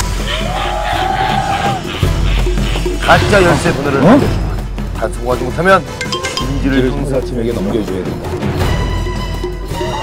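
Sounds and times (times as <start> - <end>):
repeating beat: 6.0 - 7.1.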